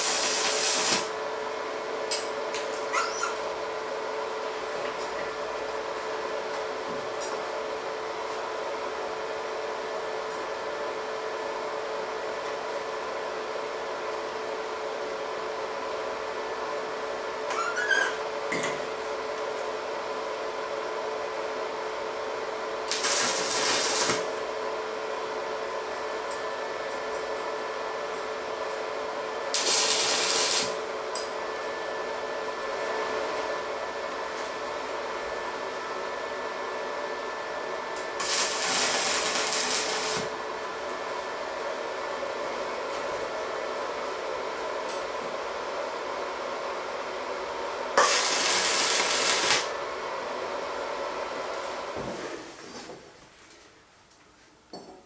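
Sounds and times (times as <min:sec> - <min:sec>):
welding arc crackles: 0:00.0 - 0:01.1, 0:22.8 - 0:24.3, 0:29.5 - 0:30.8, 0:38.2 - 0:40.3, 0:48.0 - 0:49.7
welding machine hum: 0:00.0 - 0:07.6, 0:22.5 - 0:46.1, 0:46.8 - 0:51.6.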